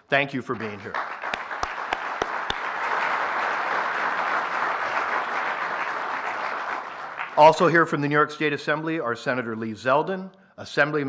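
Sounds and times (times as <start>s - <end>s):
audience applauding: 0.5s - 7.7s.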